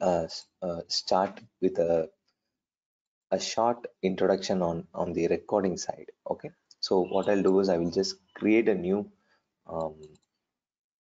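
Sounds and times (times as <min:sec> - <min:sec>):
man saying um: 0:00.0 - 0:02.0, 0:04.8 - 0:09.0, 0:09.7 - 0:10.0.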